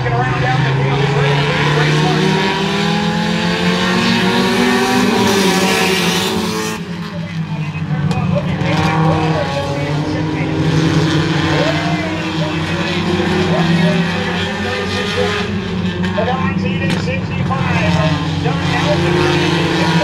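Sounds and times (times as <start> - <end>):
race car engines droning: 0.0 - 20.0.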